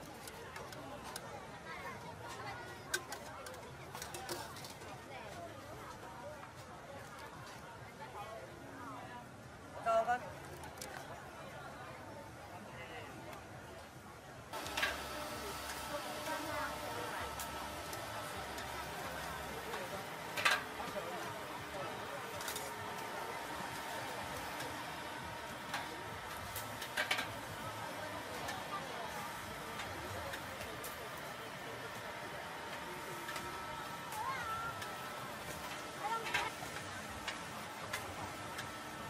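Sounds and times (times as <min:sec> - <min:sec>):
indistinct chatter of voices: 0:00.0 - 0:39.0
sharp clicks and clatters: 0:15.7 - 0:29.2.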